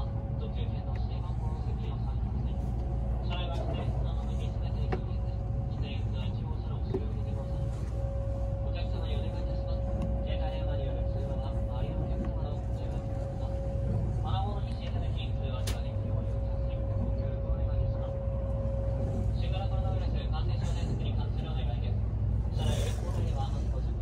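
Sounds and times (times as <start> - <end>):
train running rumble: 0.0 - 24.0.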